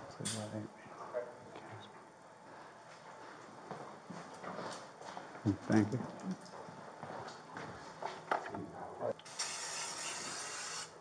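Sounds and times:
faint footsteps on hard floor: 0:02.5 - 0:05.4, 0:06.5 - 0:08.4.

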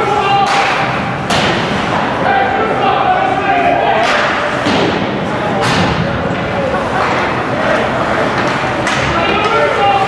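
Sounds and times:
spectators' voices and shouts: 0:00.0 - 0:10.0
puck thump in arena: 0:04.0 - 0:07.3.

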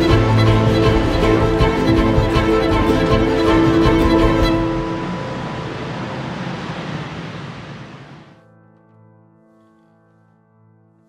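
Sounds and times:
steady rushing noise: 0:00.0 - 0:08.4.

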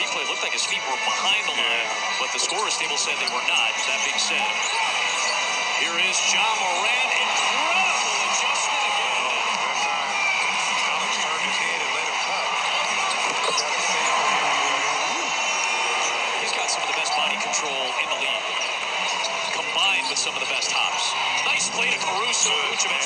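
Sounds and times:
arena crowd voices: 0:00.0 - 0:23.0.

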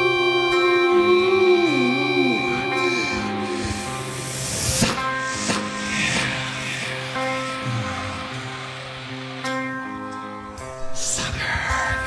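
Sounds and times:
ringing electric guitar notes: 0:00.0 - 0:10.9.

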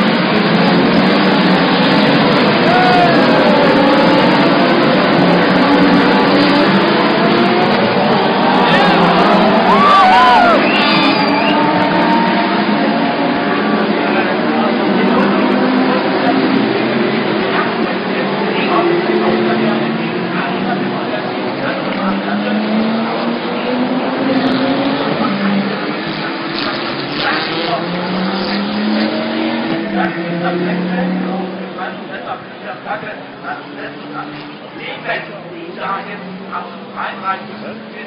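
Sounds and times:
race car engines droning: 0:00.0 - 0:38.0
crowd whooping: 0:02.5 - 0:04.2, 0:07.6 - 0:13.0.

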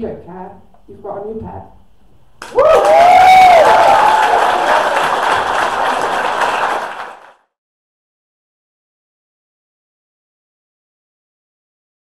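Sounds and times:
person whooping: 0:02.4 - 0:05.1
audience clapping: 0:02.4 - 0:07.5.

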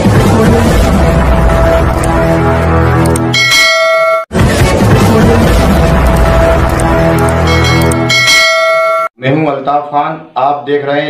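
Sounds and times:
music: 0:00.0 - 0:08.6
bright bell-like chime: 0:07.5 - 0:09.1.

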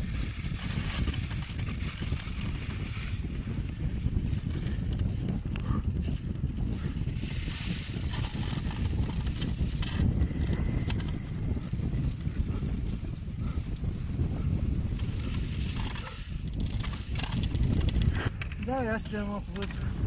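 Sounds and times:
wind buffeting microphone: 0:00.0 - 0:20.0.

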